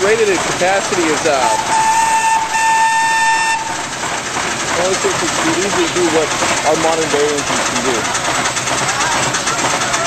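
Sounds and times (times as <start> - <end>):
steam engine hissing: 0.0 - 10.0
steam whistle high tone: 1.6 - 3.8.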